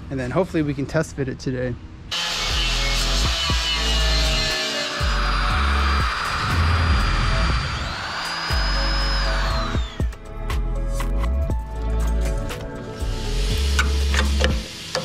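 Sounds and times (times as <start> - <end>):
angle grinder on sheet metal: 2.1 - 10.2
drill cutting metal: 2.1 - 10.4
background music with stepped bass: 8.5 - 14.9.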